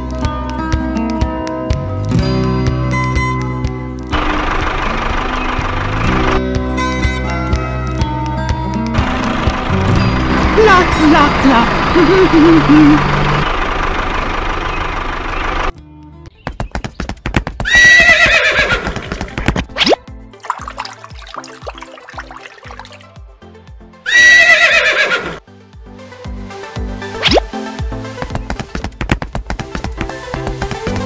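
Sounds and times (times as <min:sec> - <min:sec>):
background music: 0:00.0 - 0:13.4, 0:18.9 - 0:31.0
horse whinny: 0:17.7 - 0:19.2, 0:24.1 - 0:25.4.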